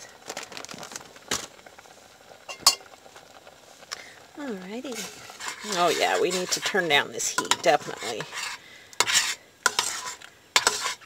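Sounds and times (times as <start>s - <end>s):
metal spoon clinking on pot: 2.5s - 2.8s.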